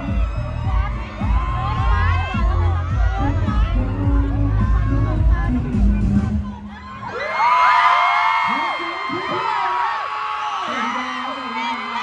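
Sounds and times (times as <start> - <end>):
crowd of fans screaming: 0.0 - 5.2, 6.3 - 12.0.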